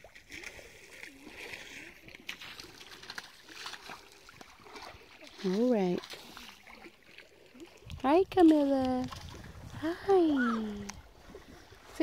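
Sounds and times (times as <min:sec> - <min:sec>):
shallow water splashing: 0:00.0 - 0:12.0.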